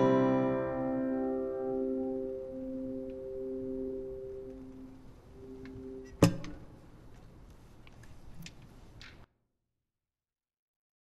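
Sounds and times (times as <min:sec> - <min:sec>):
acoustic guitar chord ringing: 0:00.0 - 0:06.2.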